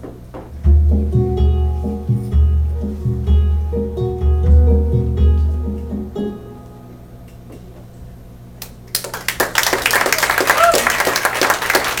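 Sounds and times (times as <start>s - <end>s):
music notes: 0.5s - 7.4s
audience clapping: 8.6s - 12.0s
person whooping: 10.1s - 11.1s.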